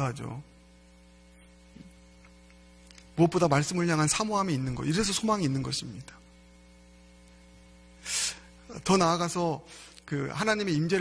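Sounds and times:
electrical mains hum: 0.0s - 11.0s.

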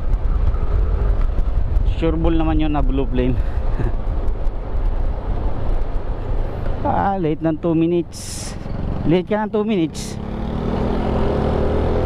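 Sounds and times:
scooter engine and road noise: 0.0s - 12.0s.

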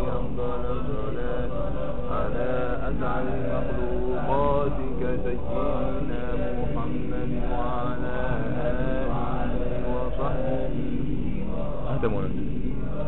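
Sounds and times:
men chanting: 0.0s - 13.0s.

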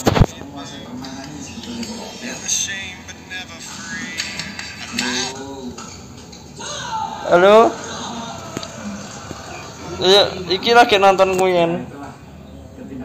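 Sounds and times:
muffled voices: 0.0s - 13.0s
television sports broadcast: 0.0s - 13.0s.

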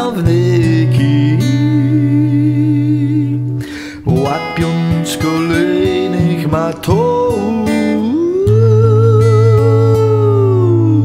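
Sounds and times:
acoustic guitar: 0.0s - 11.0s
quick breath: 3.6s - 4.1s.

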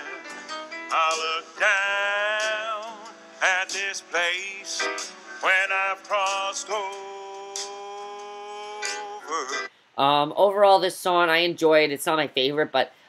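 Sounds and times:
man singing country-style song: 0.9s - 9.7s.

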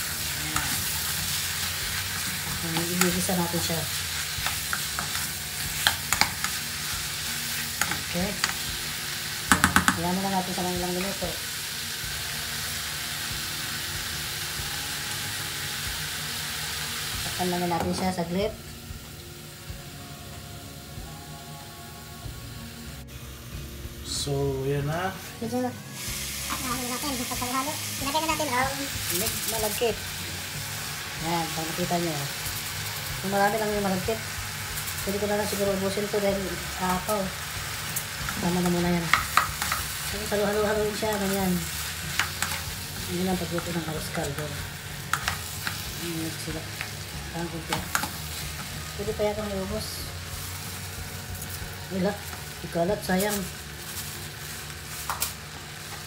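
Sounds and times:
chicken sizzling in a pot: 0.0s - 21.2s, 21.9s - 56.0s
spatula stirring and scraping: 3.9s - 8.6s
song with singing voice: 19.7s - 23.2s.

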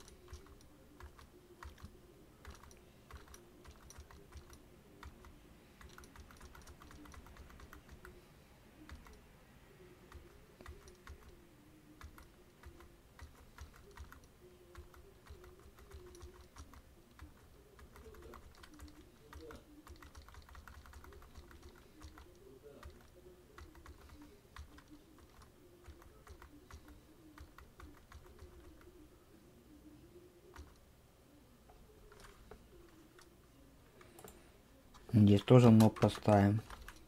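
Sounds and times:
computer keyboard typing: 0.0s - 8.2s, 8.8s - 9.2s, 10.1s - 11.4s, 12.0s - 29.0s, 30.5s - 30.9s, 32.0s - 33.3s, 34.0s - 37.0s.

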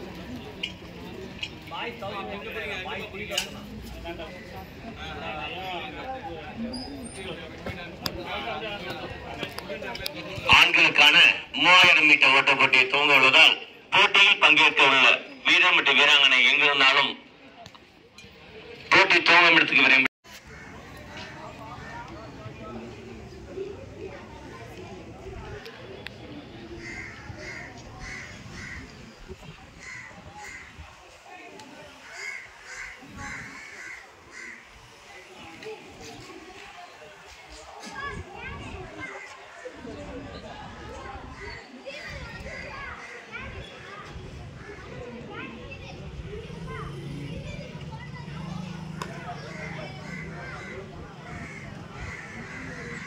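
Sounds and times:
murmur of distant voices: 0.0s - 53.0s
bird cawing harshly: 32.0s - 34.7s, 49.4s - 53.0s.

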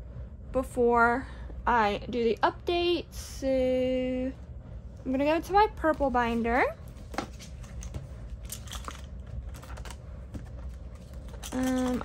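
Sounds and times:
plastic pages clicking and rustling: 7.2s - 12.0s.

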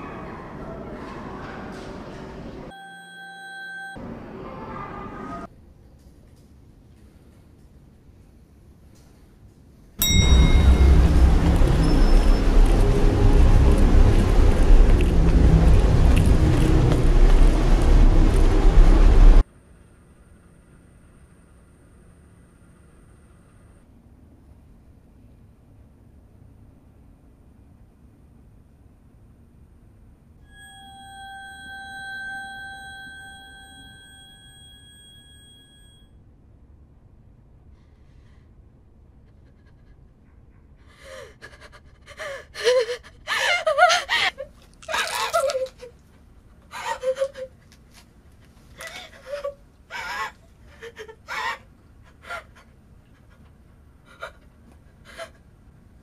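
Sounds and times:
city road traffic rumble: 10.1s - 19.4s
woman crying in gasping sobs: 40.9s - 44.5s, 46.7s - 47.7s, 48.8s - 55.5s.

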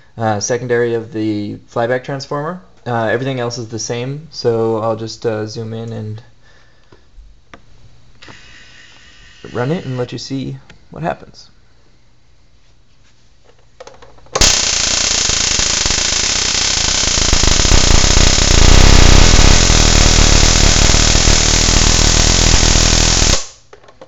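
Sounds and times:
spark gap firing: 14.4s - 23.7s.

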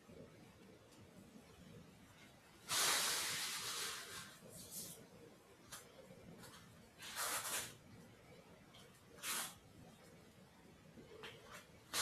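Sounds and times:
burst of hiss-like noise: 2.6s - 5.0s.

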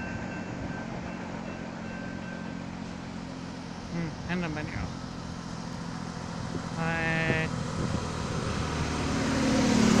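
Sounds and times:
road vehicle noise: 0.0s - 10.0s.

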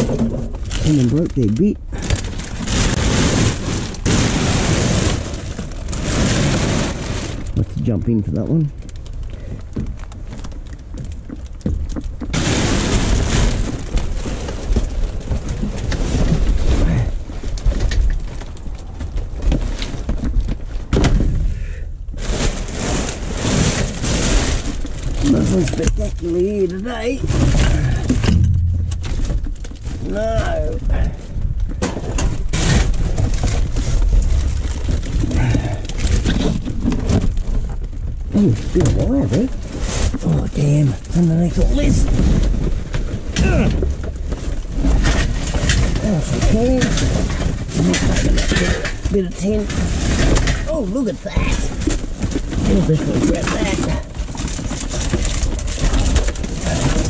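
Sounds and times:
plasterboard and cardboard clattering: 0.0s - 7.8s, 22.2s - 57.0s
plastic bags rustling: 0.0s - 57.0s.

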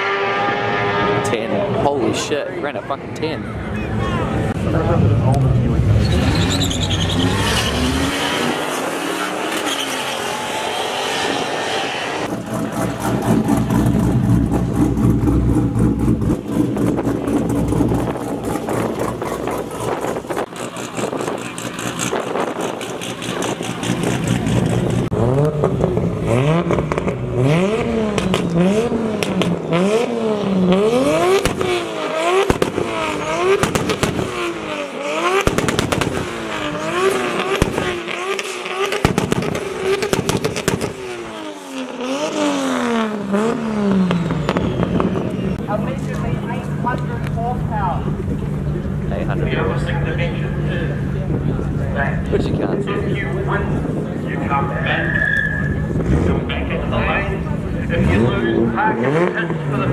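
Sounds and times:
drifting car revving: 0.0s - 59.9s
race car accelerating: 0.0s - 59.9s.

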